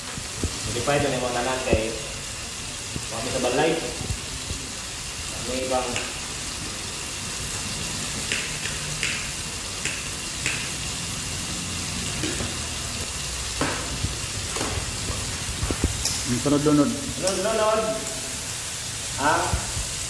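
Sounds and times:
food sizzling: 0.0s - 20.0s.

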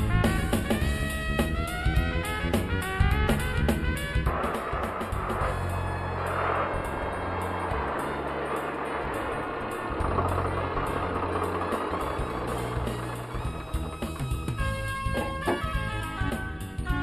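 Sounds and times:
background music: 0.0s - 17.0s
tractor engine running: 0.0s - 17.0s.

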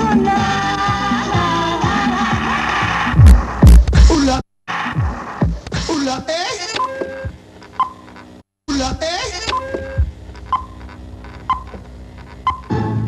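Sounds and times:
voice on old videotape: 0.0s - 7.4s, 8.7s - 10.2s.

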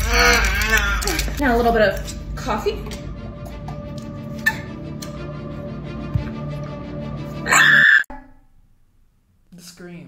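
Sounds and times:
background music: 0.0s - 8.0s
woman's high-pitched scream: 7.5s - 8.1s.

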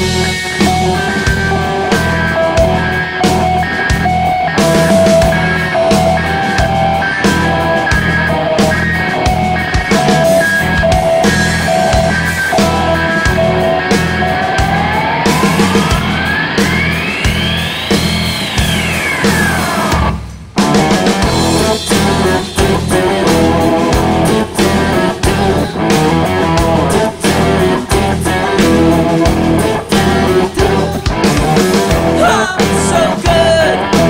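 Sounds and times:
live rock band playing: 0.0s - 34.0s.

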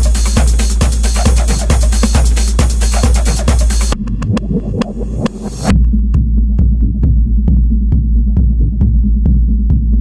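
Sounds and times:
driving kick beat: 0.0s - 10.0s
deep sustained bass: 3.6s - 10.0s.

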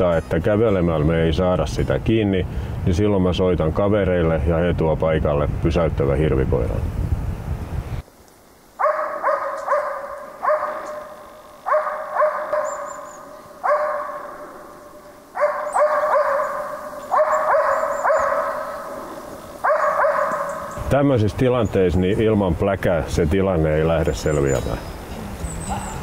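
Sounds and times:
dog barking: 8.8s - 20.8s.

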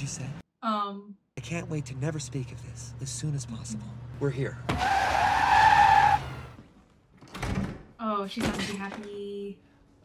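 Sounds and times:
car tyres squealing: 4.7s - 6.6s.

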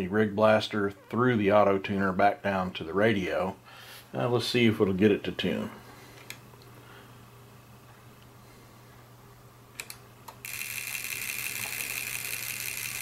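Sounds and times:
relays chattering rapidly: 10.5s - 13.0s.

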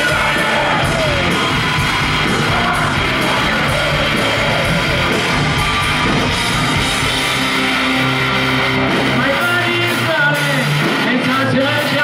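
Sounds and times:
live hard rock band: 0.0s - 12.0s.

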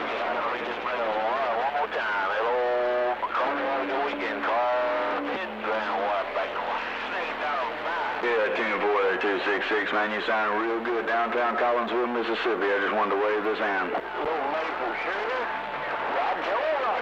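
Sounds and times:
radio static: 0.0s - 17.0s
voice over cb radio speaker: 0.0s - 17.0s.

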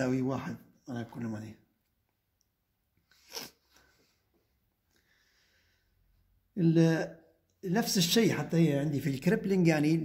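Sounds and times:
breath through the nose: 3.1s - 4.2s.

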